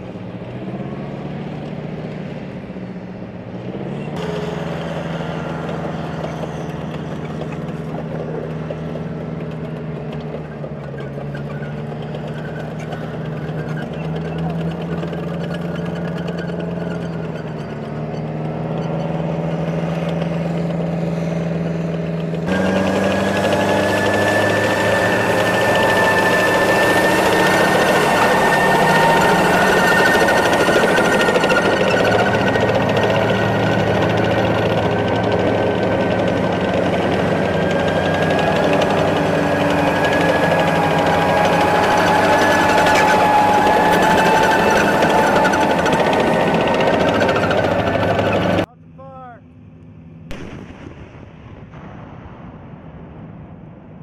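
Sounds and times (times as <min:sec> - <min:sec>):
tracked vehicle engine drone: 0:00.0 - 0:52.0
high whine of running gear: 0:01.6 - 0:48.7.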